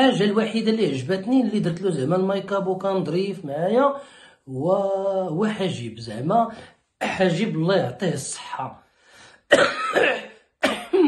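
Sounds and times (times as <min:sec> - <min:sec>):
man coughing: 0:09.5 - 0:11.0.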